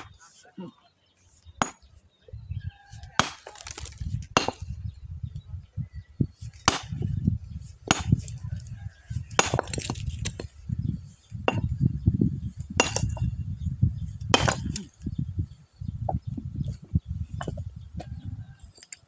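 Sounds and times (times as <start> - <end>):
sledgehammer striking stone: 1.6 - 1.9, 3.2 - 4.8, 6.7 - 7.1, 7.8 - 8.3, 9.3 - 10.6, 12.8 - 13.3, 14.3 - 14.9.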